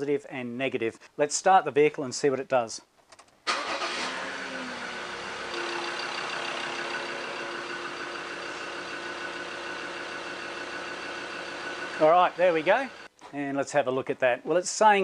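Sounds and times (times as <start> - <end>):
diesel engine starting and idling: 3.5 - 13.1.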